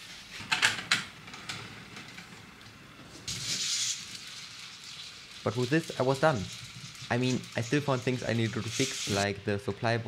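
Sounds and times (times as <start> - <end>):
short hiss: 3.3 - 4.2.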